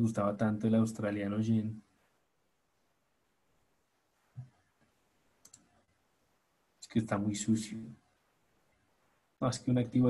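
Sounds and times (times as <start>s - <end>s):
computer mouse double-click: 5.4s - 5.7s.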